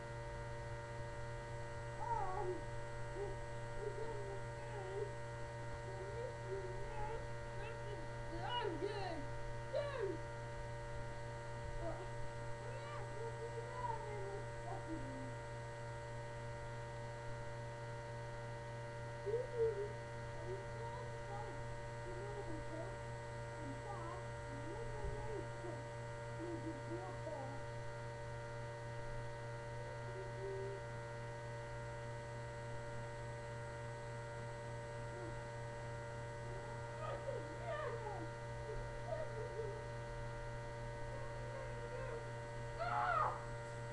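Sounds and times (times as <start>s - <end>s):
electrical hum: 0.0s - 43.9s
thin steady whine tones: 0.0s - 43.9s.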